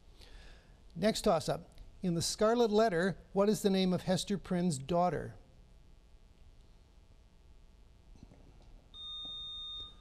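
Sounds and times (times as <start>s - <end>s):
buzzer beep: 9.0s - 10.0s.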